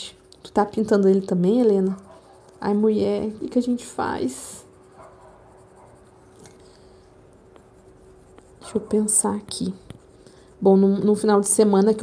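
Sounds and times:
colored pencil scratching on paper: 0.0s - 12.0s.

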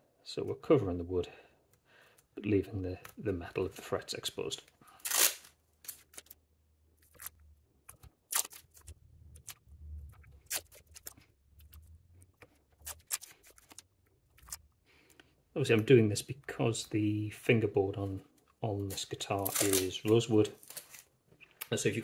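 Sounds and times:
masking tape ripping: 5.0s - 6.4s, 8.2s - 9.6s, 10.4s - 11.2s, 12.8s - 14.6s, 19.4s - 21.0s.

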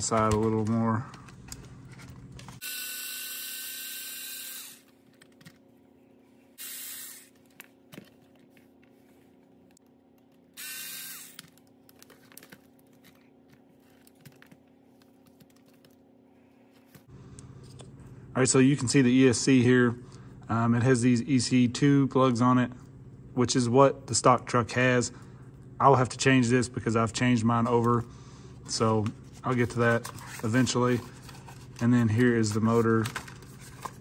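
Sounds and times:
electric screwdriver running: 2.6s - 5.0s, 6.6s - 7.6s, 10.6s - 11.6s.

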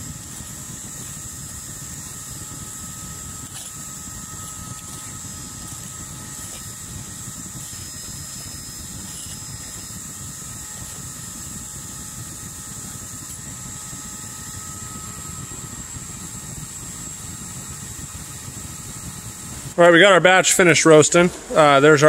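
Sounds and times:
furnace burner roaring: 0.0s - 22.0s.

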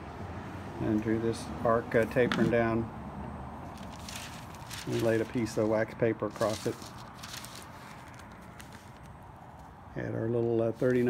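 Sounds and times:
wax paper crinkling: 3.7s - 9.7s, 10.7s - 11.0s.

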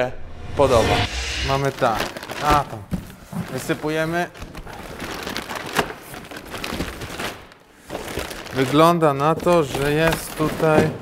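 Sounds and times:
plastic bags crinkling: 1.7s - 11.0s.

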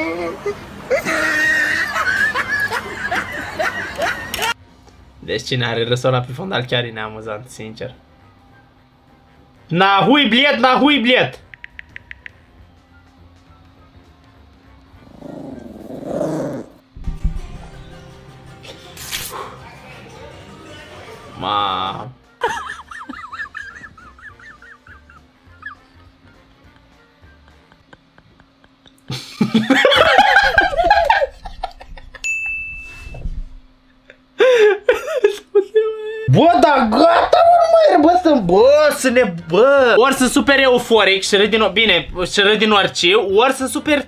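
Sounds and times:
faint background music: 0.0s - 32.0s, 32.9s - 44.0s
dog growling: 15.0s - 16.8s
low thuds: 17.0s - 17.9s
bright bell ding: 32.2s - 33.2s.

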